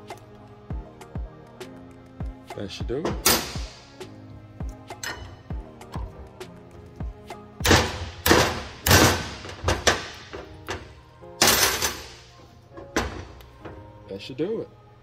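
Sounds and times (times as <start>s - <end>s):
background music: 0.0s - 15.0s.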